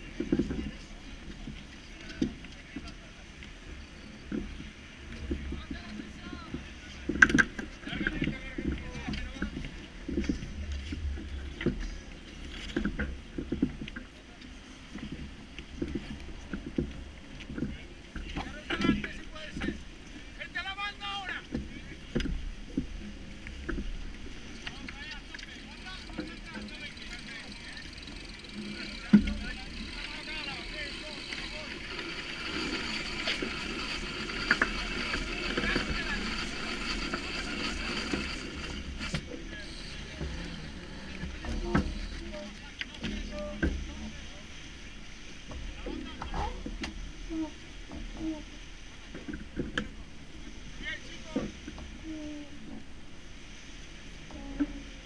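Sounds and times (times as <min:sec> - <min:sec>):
voices: 0:00.0 - 0:44.7, 0:45.7 - 0:47.6, 0:50.7 - 0:52.7
rush of wind and water: 0:00.0 - 0:55.0
rigging knocks and clicks: 0:21.5 - 0:23.0.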